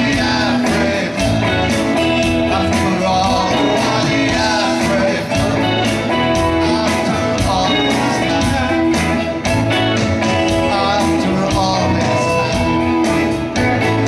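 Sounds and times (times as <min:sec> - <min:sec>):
voices singing together: 0:00.0 - 0:09.4
guitars: 0:00.0 - 0:14.0.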